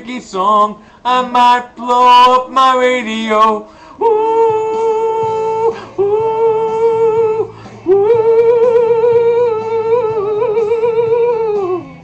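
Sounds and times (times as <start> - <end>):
karaoke backing track: 0.0 - 12.0
man singing held notes: 0.0 - 12.0.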